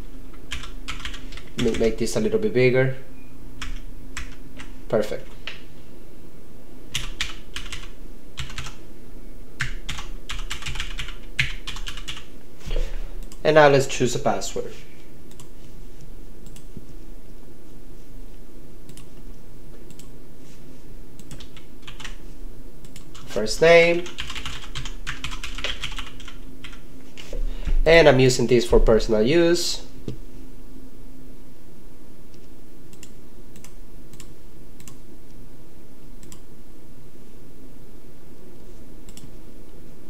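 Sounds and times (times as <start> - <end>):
computer keyboard typing: 0.4 - 2.0, 6.9 - 8.8, 9.6 - 12.3, 21.2 - 22.2, 24.0 - 26.8.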